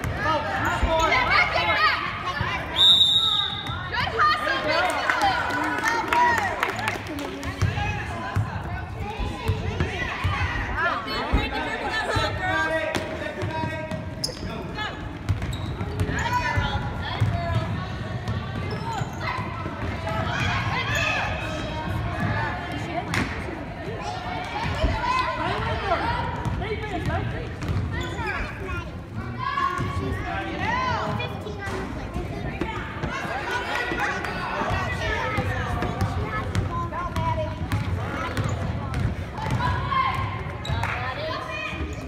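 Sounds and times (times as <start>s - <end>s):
players and spectators calling out: 0.0s - 42.0s.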